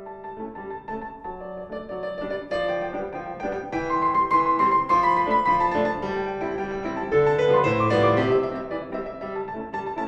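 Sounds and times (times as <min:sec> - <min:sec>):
grand piano playing: 0:00.0 - 0:10.0.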